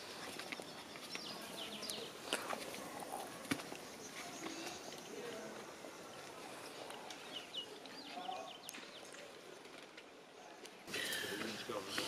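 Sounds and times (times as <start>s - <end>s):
small birds chirping: 0.0s - 9.7s.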